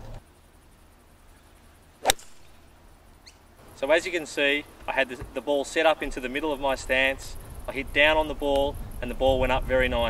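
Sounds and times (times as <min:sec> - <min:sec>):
golf club striking ball: 0:02.0 - 0:02.9.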